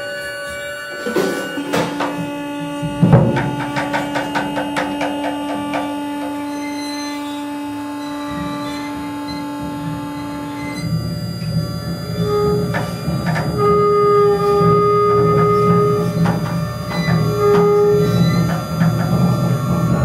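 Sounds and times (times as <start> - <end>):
long held tone: 0.0 - 20.0
low rough rumble: 9.1 - 20.0.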